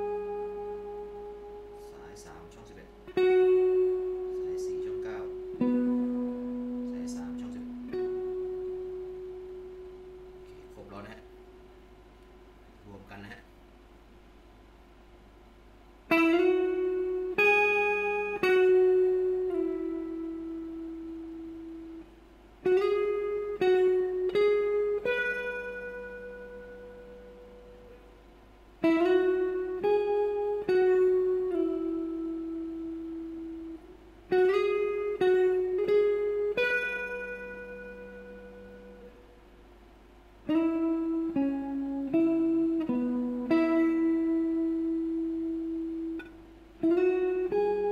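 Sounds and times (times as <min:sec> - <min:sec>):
clean electric guitar lick: 0:00.0 - 0:12.3, 0:16.1 - 0:28.1, 0:28.8 - 0:39.4, 0:40.4 - 0:47.9.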